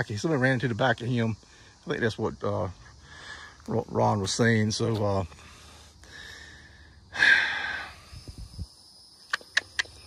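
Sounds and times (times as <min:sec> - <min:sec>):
loud breath close to microphone: 0:03.0 - 0:03.6, 0:05.4 - 0:08.7.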